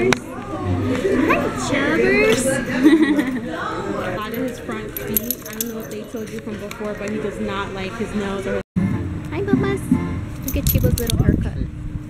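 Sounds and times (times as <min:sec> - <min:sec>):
light metallic jingling: 0:04.2 - 0:07.0, 0:10.4 - 0:11.3.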